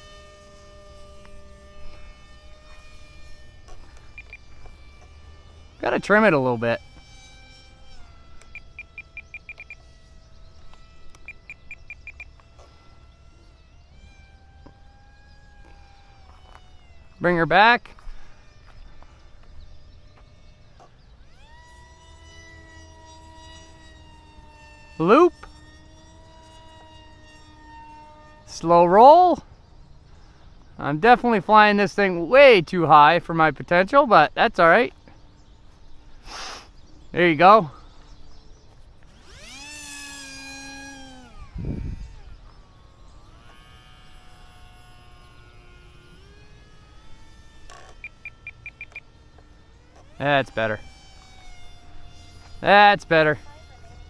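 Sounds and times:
electric motor and propeller whine: 0.0 - 54.0
short high beeps: 48.0 - 49.0.

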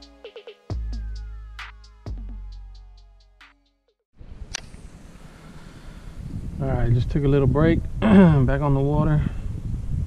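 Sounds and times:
wind rumbling on microphone: 4.2 - 10.0.

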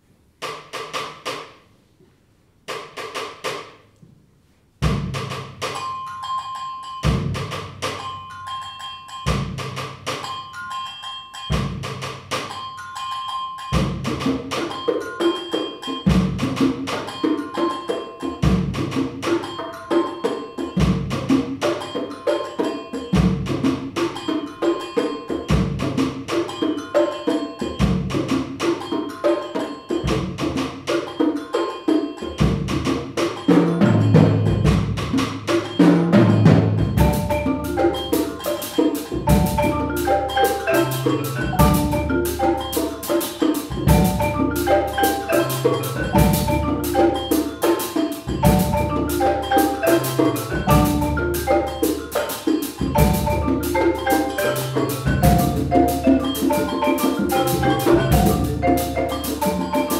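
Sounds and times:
repeating pitched percussion notes: 4.8 - 59.9
fast ticking percussion: 4.9 - 59.9.

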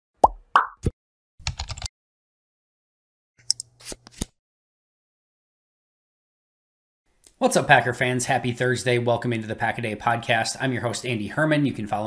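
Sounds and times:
keyboard typing clicks: 1.4 - 1.9.

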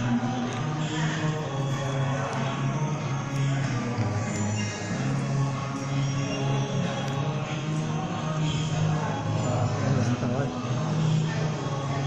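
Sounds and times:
chant-like singing: 0.0 - 12.0.

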